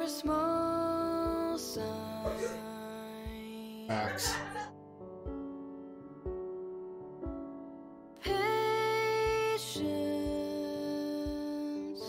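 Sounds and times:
woman singing: 0.0 - 4.6, 8.2 - 12.0
sustained backing: 3.9 - 4.7.

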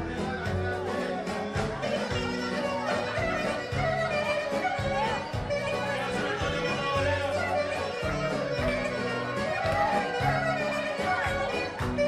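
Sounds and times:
karaoke backing track: 0.0 - 12.0.

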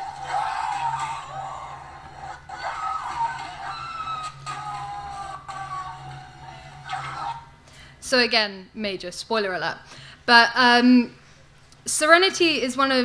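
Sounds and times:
film music over loudspeakers: 0.0 - 7.6
steady low hum: 0.0 - 13.0.

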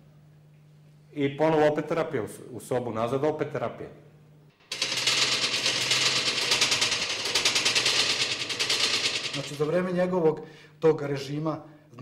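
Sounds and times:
rapid rattle of sharp clicks: 4.6 - 10.0.

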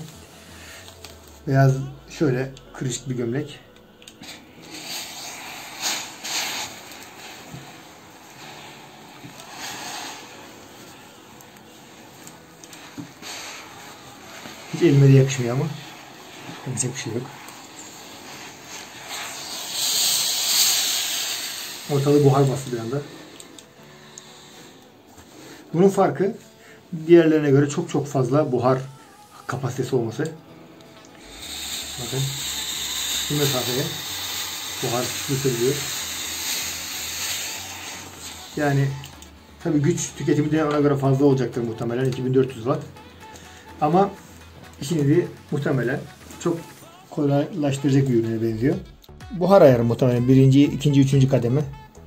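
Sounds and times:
steam iron hissing puffs: 0.0 - 52.0.

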